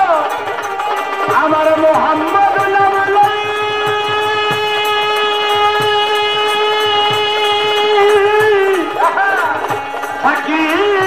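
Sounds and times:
drum strokes: 0.0 - 11.0
man singing long note: 1.4 - 11.0.

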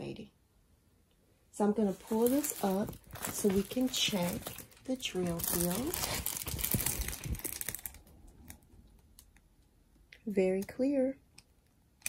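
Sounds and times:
plastic film crackling: 1.9 - 9.3.

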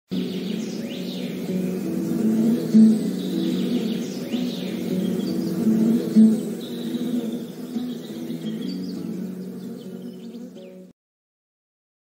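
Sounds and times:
high chirping glides: 0.1 - 10.8
low melodic music bed: 0.1 - 10.9.

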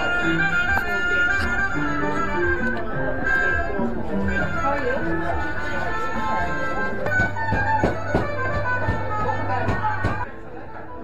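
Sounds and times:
instrumental melody: 0.0 - 11.0.

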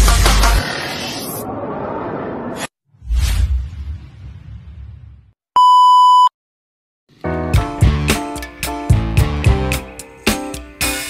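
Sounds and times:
electronic beep: 5.6 - 6.3.

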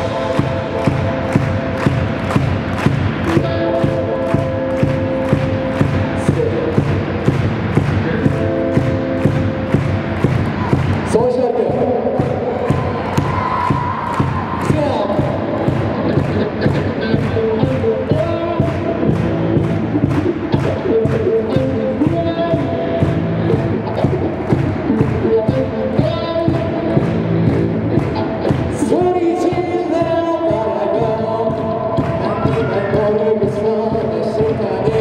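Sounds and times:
bass guitar: 0.0 - 35.0
distorted electric guitars: 0.0 - 35.0
drum kit steady beat: 0.0 - 35.0.

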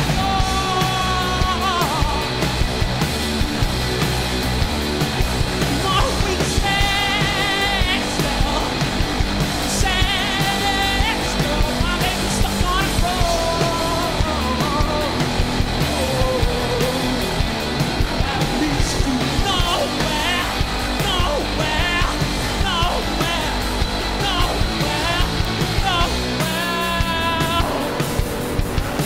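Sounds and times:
man singing: 0.0 - 2.5, 5.7 - 8.9, 9.7 - 17.4, 18.2 - 29.0
rock band playing: 0.0 - 29.0.

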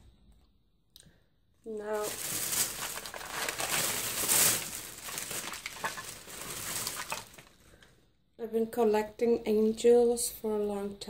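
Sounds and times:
packaging crinkling and rustling: 1.7 - 7.9.

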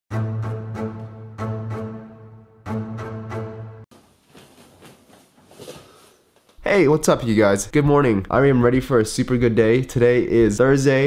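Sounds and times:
bedding rustling: 3.9 - 6.6.

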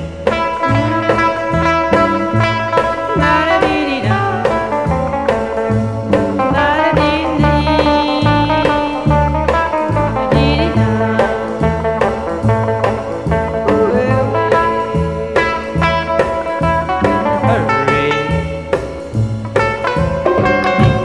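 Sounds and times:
guitar playing: 0.0 - 21.0
steady bass beat: 0.0 - 21.0.

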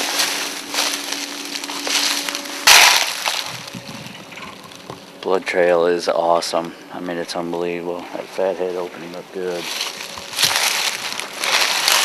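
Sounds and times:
footsteps crunching dry leaves: 0.0 - 6.7, 7.4 - 12.0.

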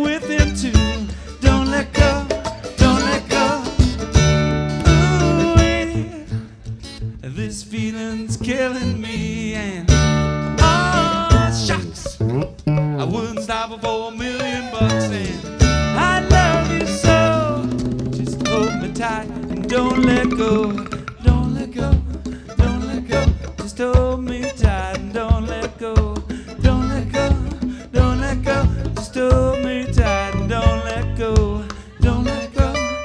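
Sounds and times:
country band playing: 0.0 - 7.2, 8.4 - 33.0
lead guitar: 0.0 - 7.2, 9.9 - 13.6, 14.8 - 23.6
stand-up bass: 0.0 - 13.5, 14.6 - 33.0.

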